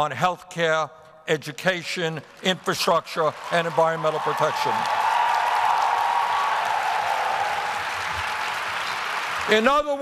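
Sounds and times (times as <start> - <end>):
audience applauding: 2.4 - 10.0.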